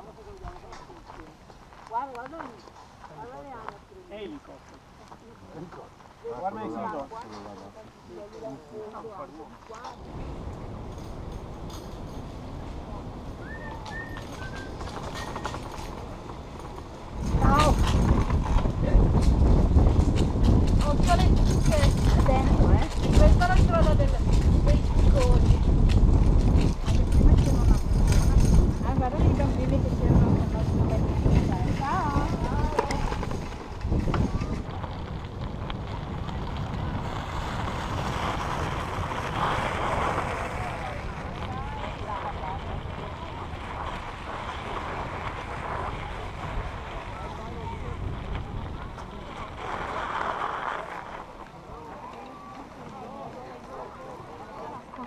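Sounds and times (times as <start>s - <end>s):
wind buffeting microphone: 8.9s - 55.0s
faint distant voices: 26.8s - 55.0s.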